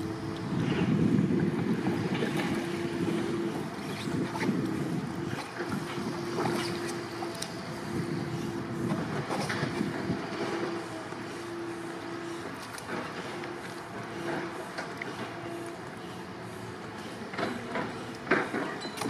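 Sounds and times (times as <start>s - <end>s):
wind on microphone: 0.0s - 11.0s
water sloshing and splashing: 0.0s - 19.0s.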